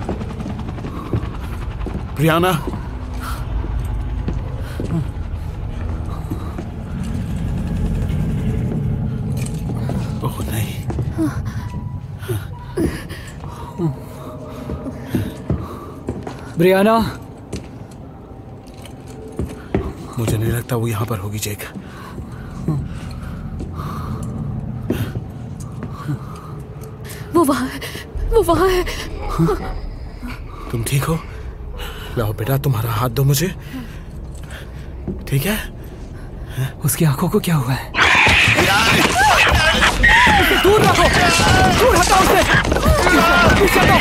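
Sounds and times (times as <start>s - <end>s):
low mechanical rumble: 0.0s - 16.5s, 22.0s - 38.0s
low steady hum: 0.0s - 37.9s.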